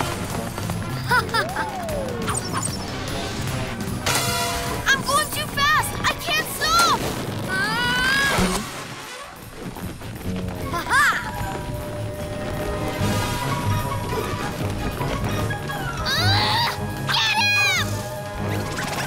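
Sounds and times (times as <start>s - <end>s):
cartoon background music: 0.0s - 7.0s, 10.5s - 19.0s.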